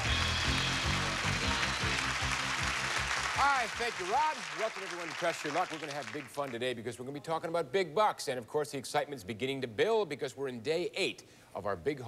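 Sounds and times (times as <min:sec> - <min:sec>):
upbeat game show music: 0:00.0 - 0:06.6.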